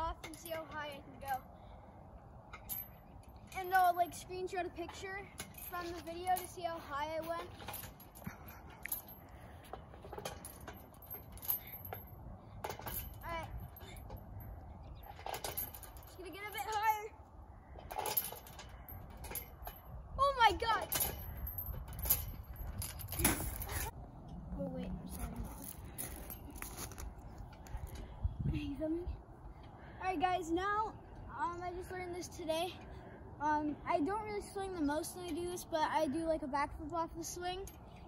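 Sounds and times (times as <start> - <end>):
swing chains jingling: 0.0 - 24.0, 24.7 - 29.1
steady low rumble: 0.8 - 30.0.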